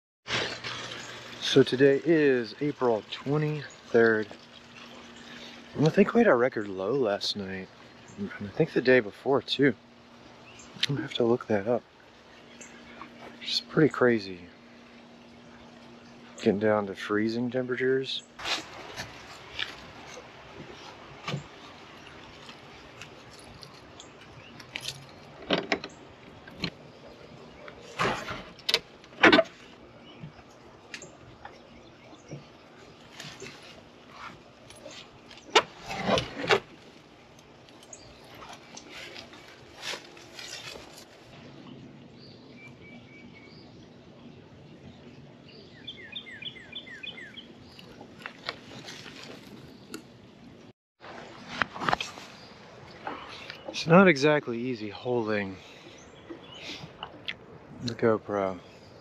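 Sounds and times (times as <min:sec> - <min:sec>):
birds chirping: 0:00.5 - 0:50.7, 0:51.3 - 0:59.0
knocks rattles and scrapes: 0:27.6 - 0:29.8, 0:33.1 - 0:37.0.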